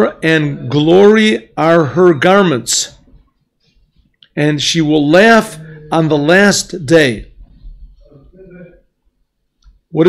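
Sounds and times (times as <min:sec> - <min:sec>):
man speaking: 0:00.0 - 0:03.1, 0:04.3 - 0:07.4, 0:08.0 - 0:09.0.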